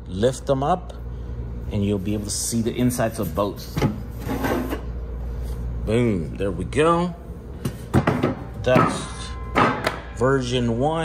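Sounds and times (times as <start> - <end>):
metal cover scraping: 3.3 - 4.9.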